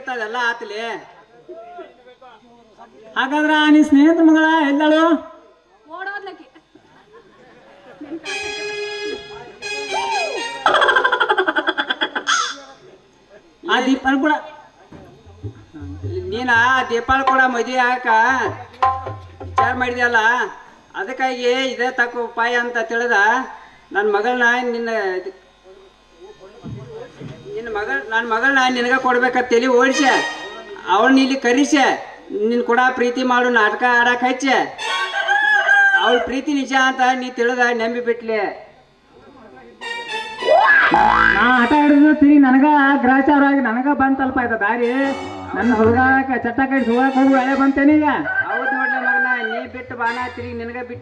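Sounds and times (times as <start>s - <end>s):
music: 8.2s - 10.9s, 15.2s - 17.7s, 18.4s - 20.0s, 29.8s - 30.9s, 39.8s - 42.1s, 44.8s - 48.1s, 49.8s - 51.0s
rooster-like crowing: 34.8s - 36.4s, 48.1s - 49.8s
person crying out into microphone: 40.4s - 41.8s.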